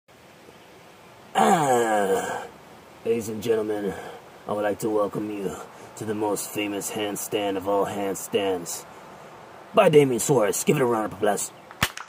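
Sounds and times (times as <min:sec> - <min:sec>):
faint background hiss: 0:00.1 - 0:12.0
man's drawn-out vocal sound: 0:01.3 - 0:02.6.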